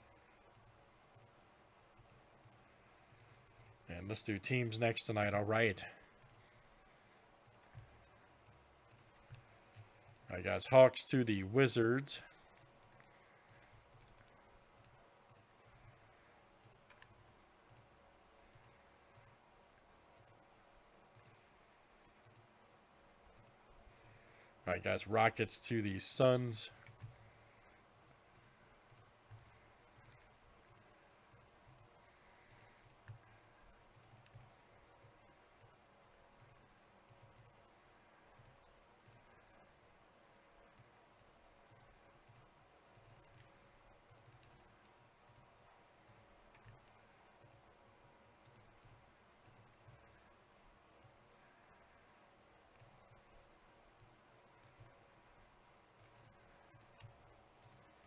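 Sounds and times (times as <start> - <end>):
mouse and keyboard clicks: 16.6 - 17.9, 40.7 - 47.6.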